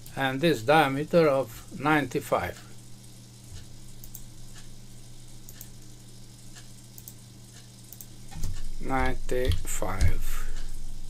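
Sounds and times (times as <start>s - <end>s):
low electrical hum and hiss: 0.0s - 11.0s
man's voice: 8.8s - 10.5s.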